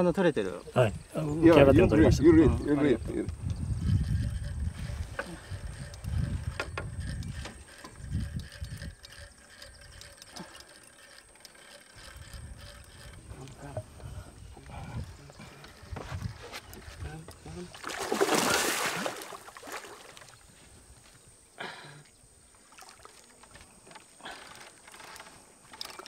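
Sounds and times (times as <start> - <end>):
fishing reel clicking: 3.0 - 13.8, 23.4 - 26.0.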